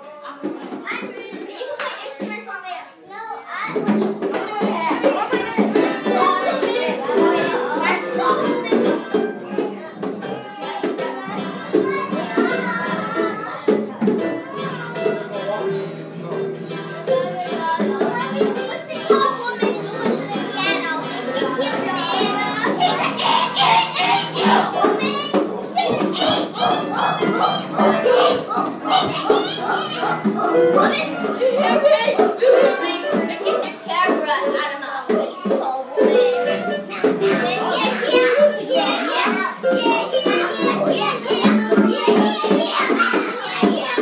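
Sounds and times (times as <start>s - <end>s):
children shouting and singing: 0.0s - 44.0s
music playing: 5.8s - 9.9s, 22.6s - 33.7s, 36.0s - 40.9s.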